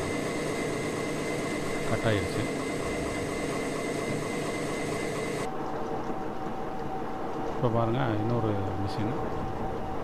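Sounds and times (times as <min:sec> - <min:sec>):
background hum and hiss: 0:00.0 - 0:10.0.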